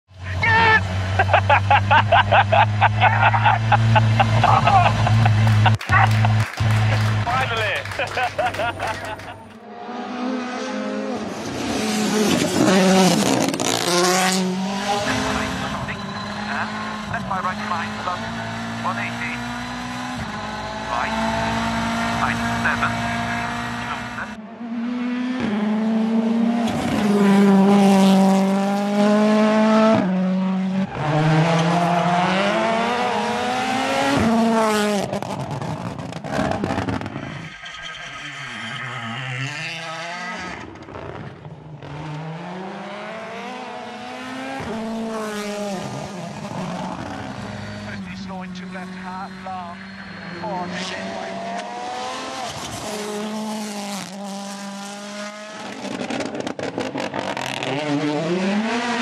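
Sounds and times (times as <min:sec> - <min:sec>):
rally car engines at full throttle: 0:00.1 - 0:59.0.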